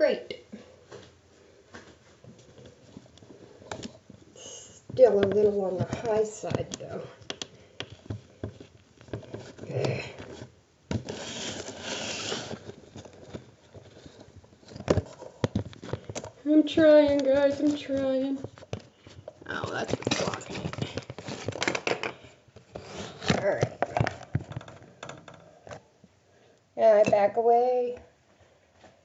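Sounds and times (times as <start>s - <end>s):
tablet being handled taps: 5.1s - 9.5s
rubbing and scraping near microphone: 7.9s - 21.8s, 22.7s - 25.8s.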